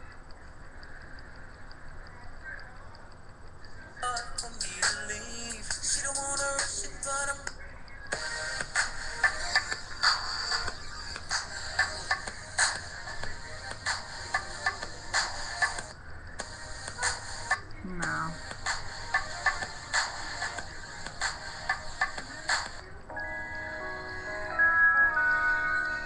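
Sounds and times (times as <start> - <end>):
recorded music with regular beat: 3.4 - 26.0.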